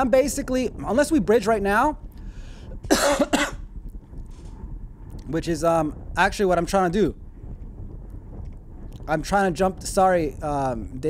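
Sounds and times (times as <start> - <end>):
man coughing: 2.9 - 3.7.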